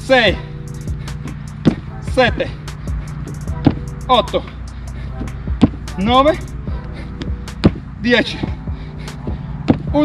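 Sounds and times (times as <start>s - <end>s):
background music: 0.0s - 10.0s
foot thud on plastic step: 1.2s - 1.9s, 3.5s - 3.9s, 5.2s - 5.9s, 7.2s - 8.7s, 9.6s - 10.0s.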